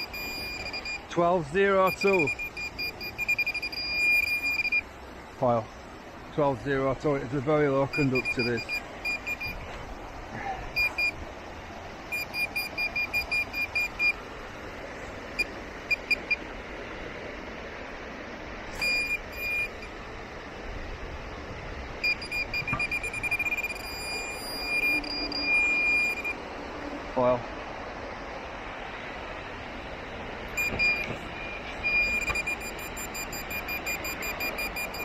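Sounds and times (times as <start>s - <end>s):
metal detector pinpointer beeping: 0.0s - 1.1s, 1.8s - 4.8s, 7.9s - 9.6s, 10.8s - 11.2s, 12.1s - 14.2s, 15.4s - 16.4s, 18.7s - 19.9s, 22.0s - 26.4s, 30.6s - 35.0s.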